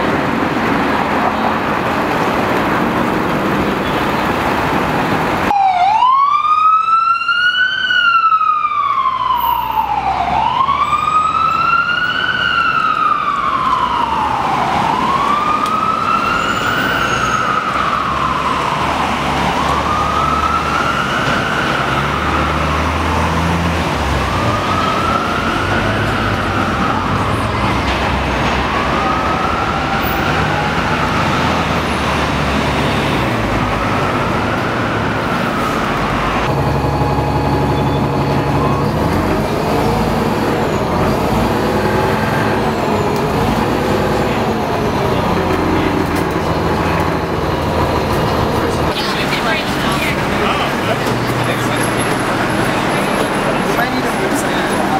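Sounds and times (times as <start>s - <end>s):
city traffic: 0.0s - 54.9s
siren wailing: 5.4s - 32.4s, 33.0s - 50.9s
lower-pitched siren wail: 5.4s - 50.2s.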